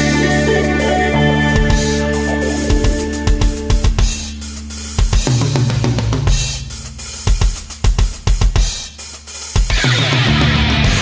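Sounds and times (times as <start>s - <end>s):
metal band drums: 0.0s - 11.0s
rapid kick-drum strikes: 0.0s - 11.0s.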